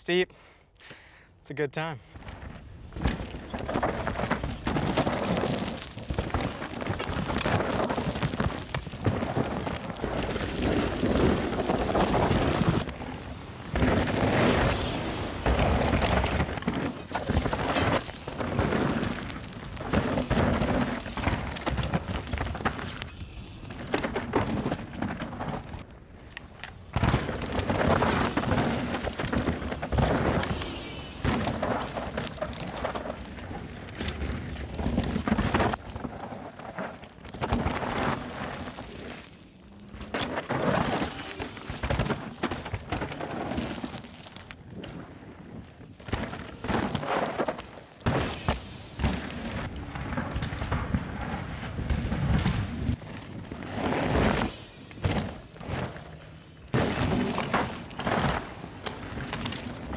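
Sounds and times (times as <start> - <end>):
bike tyres skidding over gravel: 2.1 - 59.9.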